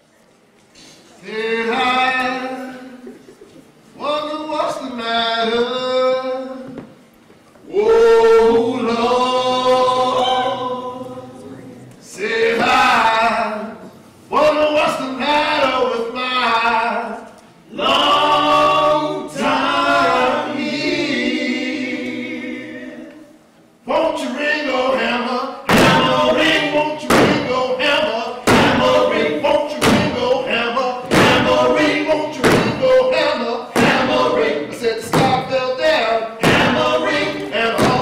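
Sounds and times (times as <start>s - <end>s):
voices singing a cappella: 1.0s - 3.3s, 7.6s - 38.0s
heavy thumps on stage: 25.7s - 27.6s, 28.4s - 30.4s, 31.0s - 33.0s, 33.8s - 34.3s, 35.0s - 35.6s, 36.4s - 38.0s.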